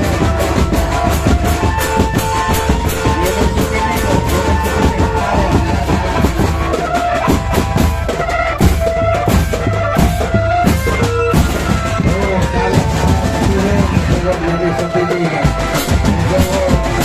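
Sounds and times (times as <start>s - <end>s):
held melody line: 0.0s - 17.0s
marching drums: 0.0s - 17.0s.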